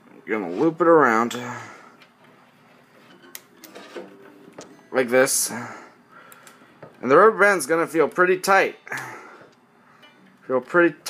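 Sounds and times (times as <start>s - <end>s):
guitar strings ringing: 9.9s - 10.7s.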